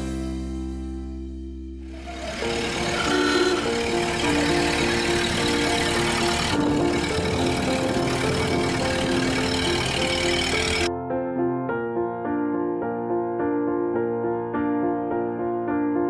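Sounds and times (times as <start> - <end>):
background music melody: 0.0 - 16.0
truck engine running: 1.8 - 10.9.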